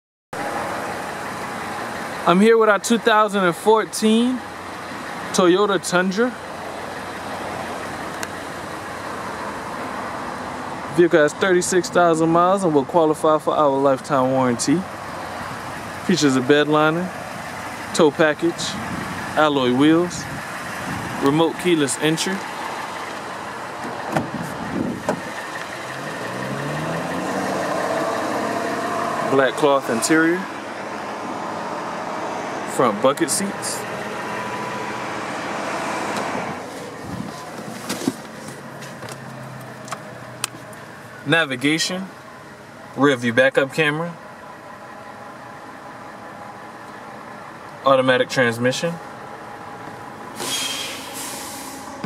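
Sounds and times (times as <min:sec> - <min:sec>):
engine hum: 0:00.4 - 0:52.0
car door latch clicking: 0:23.8 - 0:24.4
outdoor background hum and hiss: 0:27.9 - 0:52.0.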